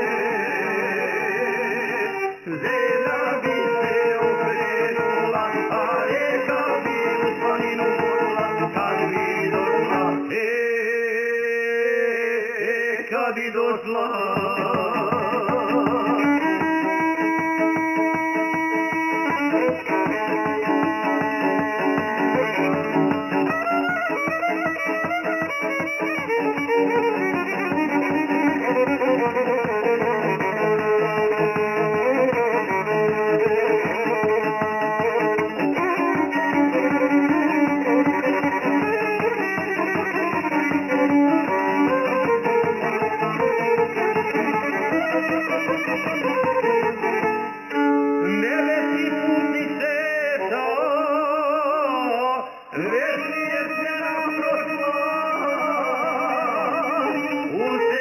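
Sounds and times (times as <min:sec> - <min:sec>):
plucked lute strings: 0:00.0 - 0:10.4, 0:14.3 - 0:49.8
violin melody: 0:00.0 - 0:10.6, 0:14.1 - 0:58.0.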